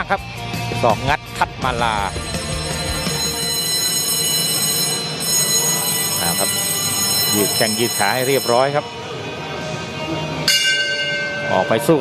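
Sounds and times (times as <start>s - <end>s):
boxing ring bell ringing: 2.0s - 8.9s, 10.5s - 12.0s.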